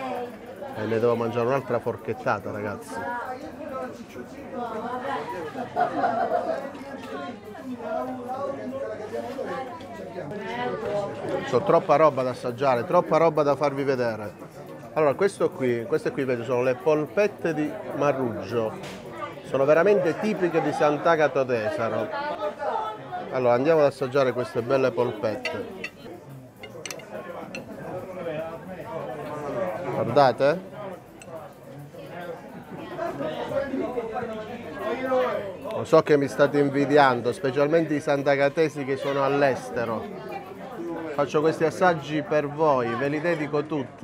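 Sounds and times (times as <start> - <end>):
chatter of people talking: 0.0 - 44.0
fork clicking on plate: 25.4 - 27.7.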